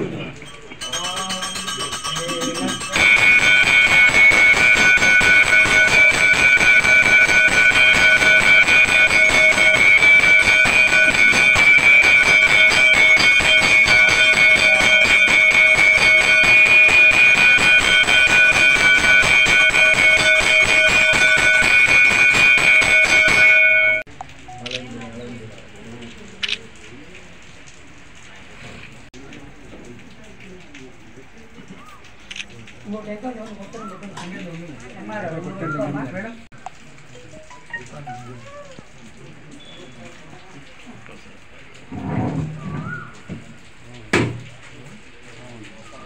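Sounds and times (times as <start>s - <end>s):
temple bell ringing rapidly: 0.4s - 24.1s.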